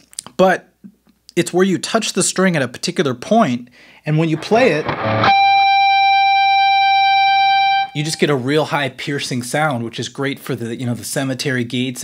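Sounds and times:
electric guitar harmonic ringing: 0:04.4 - 0:08.2.

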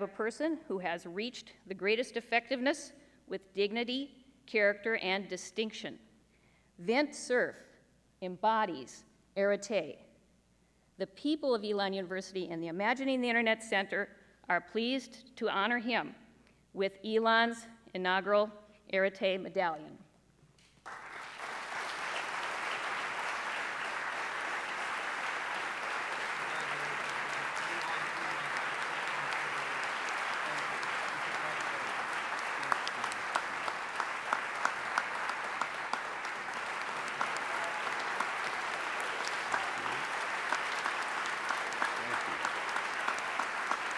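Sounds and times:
audience applauding: 0:20.8 - 0:43.9.

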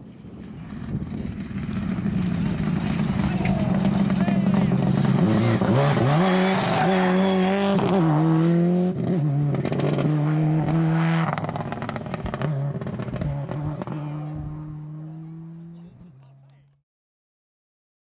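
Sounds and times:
engine crackles: 0:00.0 - 0:08.5, 0:09.3 - 0:16.8
rally car engine revving: 0:00.9 - 0:16.5.

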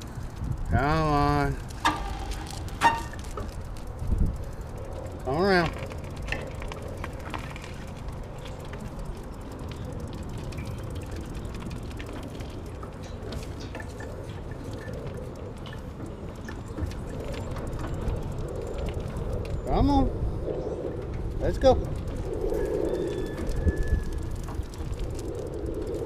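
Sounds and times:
faint clicks and rattles: 0:00.0 - 0:20.0, 0:20.8 - 0:26.0
wind rumble on microphone: 0:00.0 - 0:26.0.

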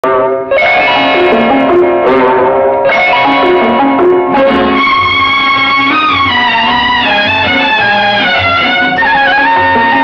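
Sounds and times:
held-note melody: 0:00.0 - 0:10.0
plucked strings: 0:00.0 - 0:10.0.

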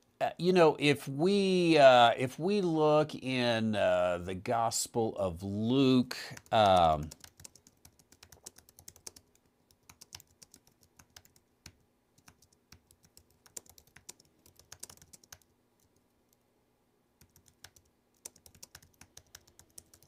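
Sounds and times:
typing on computer keyboard: 0:06.3 - 0:16.0, 0:17.2 - 0:20.0.

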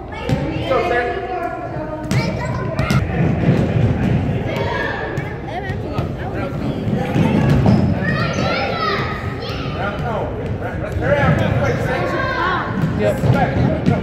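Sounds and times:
basketballs bouncing on wooden floor: 0:12.7 - 0:14.0.

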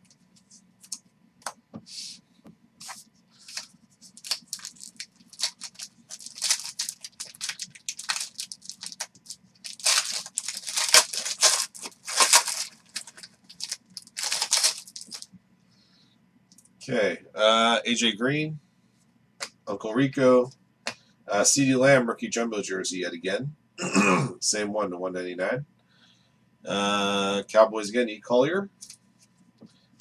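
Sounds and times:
foil wrapper crinkling and tearing: 0:02.8 - 0:15.3.

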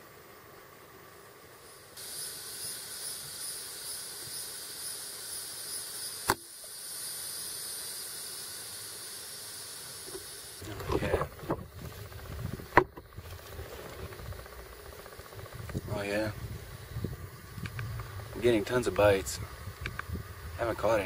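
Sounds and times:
insects droning: 0:00.0 - 0:21.0
sharp click: 0:06.2 - 0:06.5.

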